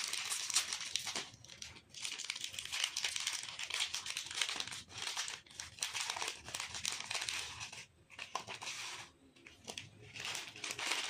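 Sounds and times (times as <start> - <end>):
plastic wrapper crinkling and tearing: 0.0 - 11.0.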